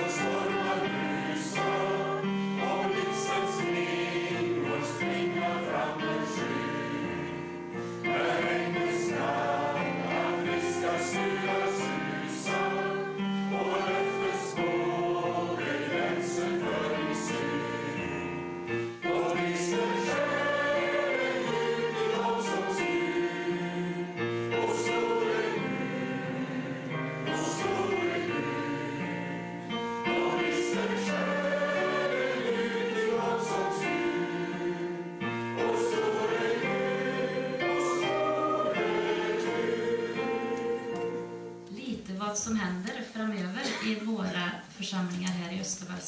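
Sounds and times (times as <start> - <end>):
congregation singing a hymn: 0.0 - 41.6
keyboard accompaniment: 0.0 - 42.0.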